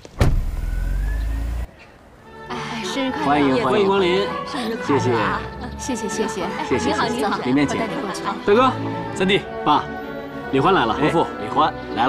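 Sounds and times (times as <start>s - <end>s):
sports car engine rumbling: 0.0s - 1.7s.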